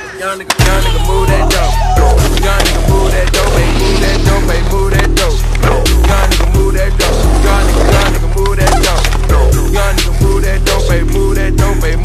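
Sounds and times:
music with heavy bass beat: 0.6 - 12.0
skateboard rolling on pavement: 1.6 - 11.1.

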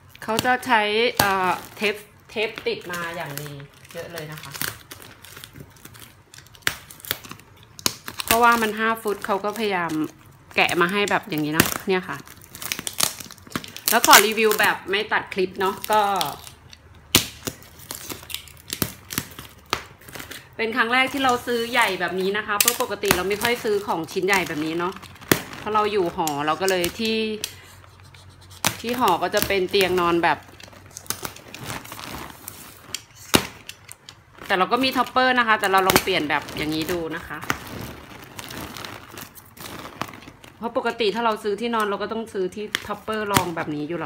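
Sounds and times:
plastic wrapping crinkling: 0.0 - 44.0.

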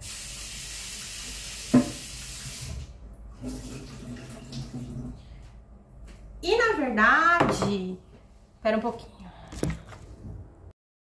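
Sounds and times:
kitchen tap running: 0.0 - 5.2
knock in sink: 1.7 - 2.0, 7.4 - 7.8.

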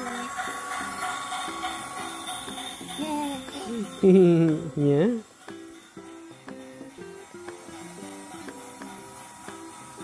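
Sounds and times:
toy steam locomotive hissing: 0.0 - 10.0.

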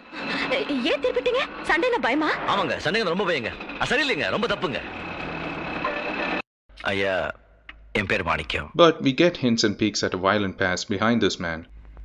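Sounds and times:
auto-rickshaw engine and road noise: 0.0 - 6.4
man speaking: 2.5 - 4.8, 6.8 - 7.3, 8.0 - 11.7.

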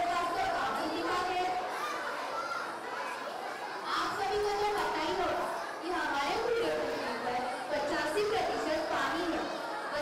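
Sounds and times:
girl speaking into a microphone: 3.8 - 10.0.

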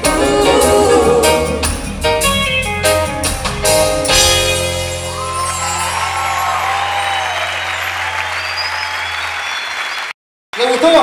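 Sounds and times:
audience applauding: 5.0 - 11.0.

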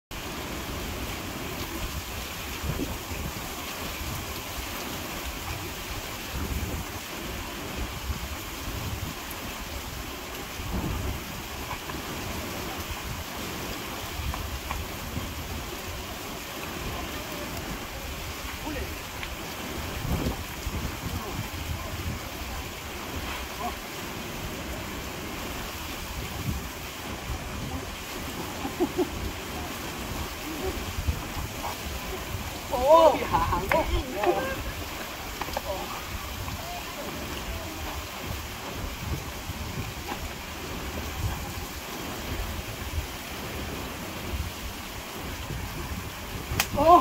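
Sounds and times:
ocean surf: 0.1 - 47.0
wind buffeting microphone: 0.7 - 47.0.

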